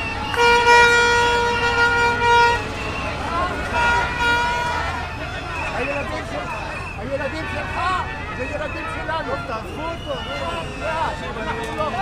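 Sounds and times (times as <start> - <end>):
crowd shouting: 0.0 - 12.0
plastic horn long note: 0.3 - 2.7.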